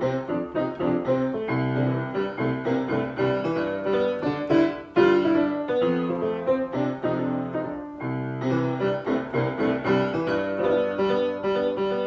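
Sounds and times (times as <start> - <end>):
loud piano chord: 0.0 - 12.0
upright piano playing: 0.0 - 12.0.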